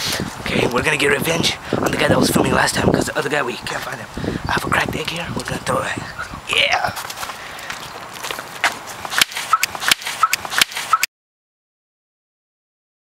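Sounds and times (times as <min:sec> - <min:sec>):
footsteps: 0:06.8 - 0:11.1.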